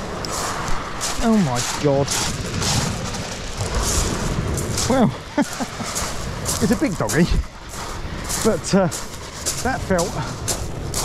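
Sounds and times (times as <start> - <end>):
low rumble: 0.0 - 11.0
pebbles crunching and rattling: 0.0 - 11.0.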